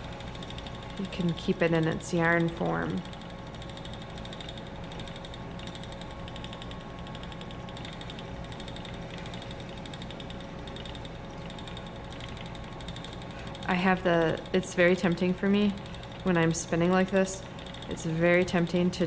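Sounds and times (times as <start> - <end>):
spinning wheel whirring: 0.0 - 19.0.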